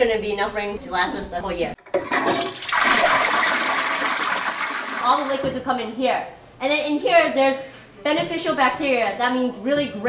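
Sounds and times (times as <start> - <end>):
toilet flushing: 1.8 - 5.6.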